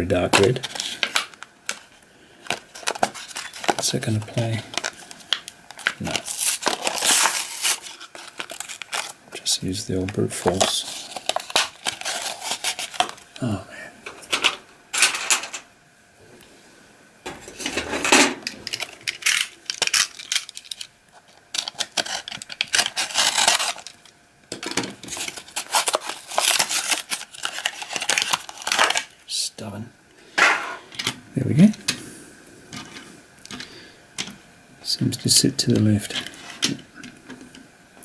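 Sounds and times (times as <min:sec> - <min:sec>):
packaging rustling and crinkling: 0:00.2 - 0:13.5, 0:17.3 - 0:29.2.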